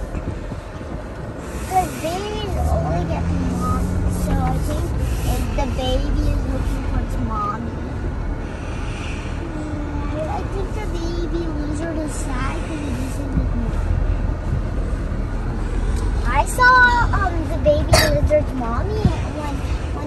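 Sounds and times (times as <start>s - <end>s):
vehicle rumbling over dirt trail: 0.0s - 20.0s
indistinct voices: 1.5s - 14.3s.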